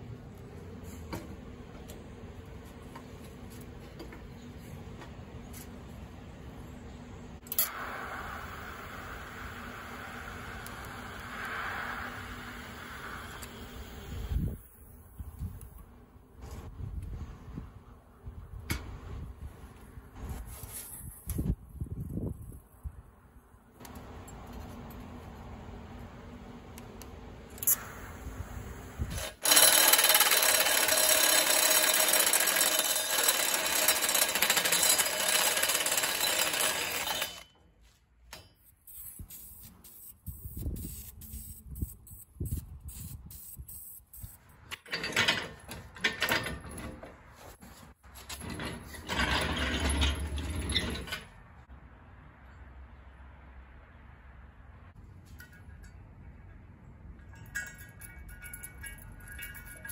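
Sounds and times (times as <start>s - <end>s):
die grinder grinding steel: 29.0s - 37.5s, 48.2s - 51.3s
metal clicks and clanks: 44.6s - 47.2s, 55.2s - 59.9s.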